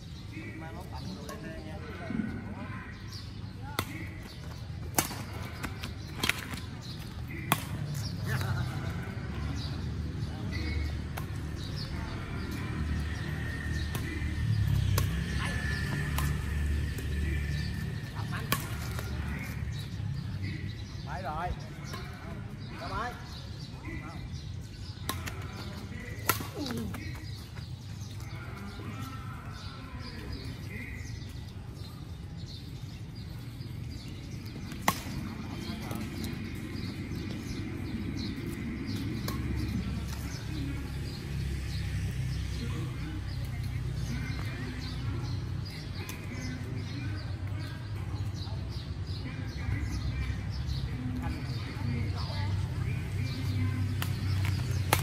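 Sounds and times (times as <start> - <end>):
distant talk: 0.0 - 55.0
rackets hitting shuttlecock: 3.8 - 8.5, 14.9 - 15.2, 16.0 - 17.4, 18.4 - 19.3, 25.0 - 27.4, 34.5 - 35.5, 38.9 - 40.2, 54.0 - 55.0.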